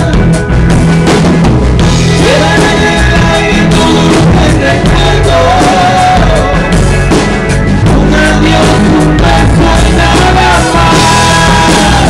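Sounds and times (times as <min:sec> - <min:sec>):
drum kit beat: 0:00.0 - 0:12.0
live band playing: 0:00.0 - 0:12.0.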